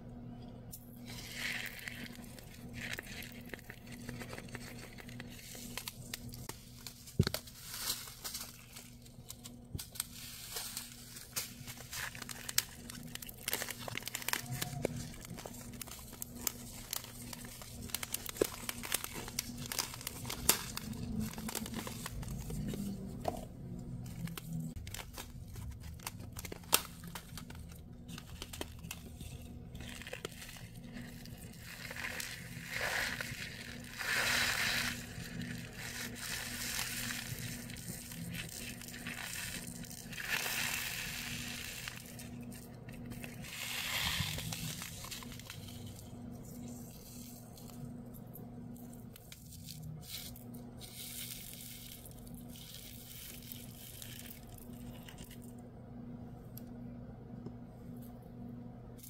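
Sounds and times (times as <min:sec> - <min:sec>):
steady low hum: 0:00.0 - 0:59.0
plastic bags crinkling: 0:01.2 - 0:48.1, 0:48.8 - 0:55.5.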